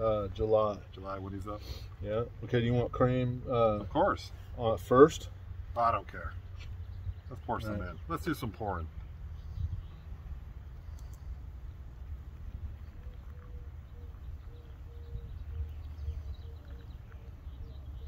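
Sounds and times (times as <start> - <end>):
low outdoor rumble: 0.0 - 18.0.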